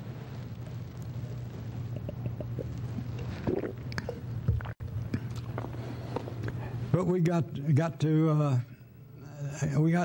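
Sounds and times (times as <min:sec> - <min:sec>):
steady low hum: 0:00.0 - 0:10.0
man gulping and swallowing: 0:01.9 - 0:05.8.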